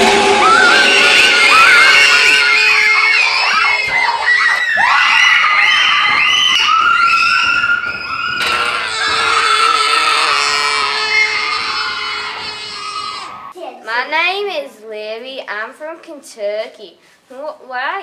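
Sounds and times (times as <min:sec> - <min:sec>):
children screaming: 0:00.0 - 0:13.6.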